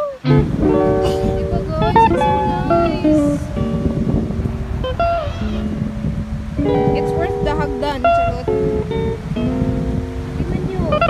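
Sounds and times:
plucked string tune: 0:00.0 - 0:11.0.

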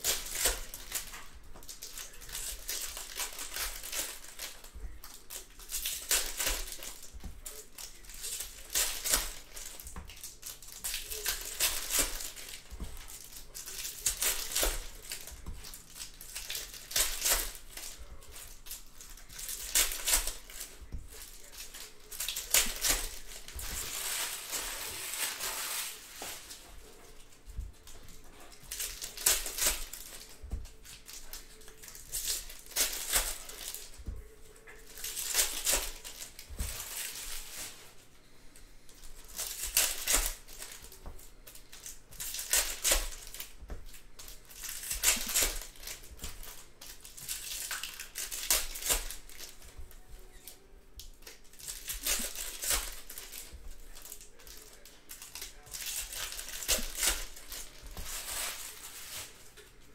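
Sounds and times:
foil wrappers crinkling: 0:00.0 - 0:59.9.

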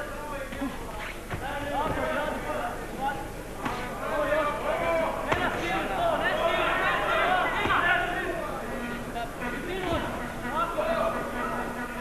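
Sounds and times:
crowd voices: 0:00.0 - 0:12.0
punches landing: 0:00.5 - 0:02.3, 0:04.9 - 0:05.9, 0:07.5 - 0:08.0.

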